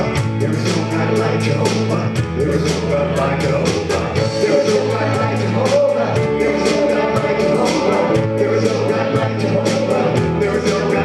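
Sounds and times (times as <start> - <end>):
drum kit steady beat: 0.0 - 11.0
electric bass guitar: 0.0 - 11.0
live rock band playing: 0.0 - 11.0.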